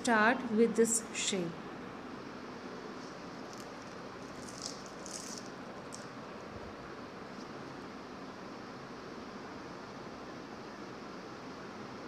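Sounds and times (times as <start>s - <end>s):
steady background hiss: 0.0s - 12.0s
hands rustling: 2.9s - 6.2s.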